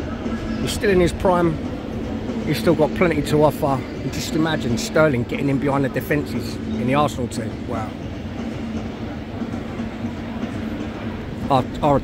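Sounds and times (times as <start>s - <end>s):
stadium background rumble: 0.0s - 12.0s.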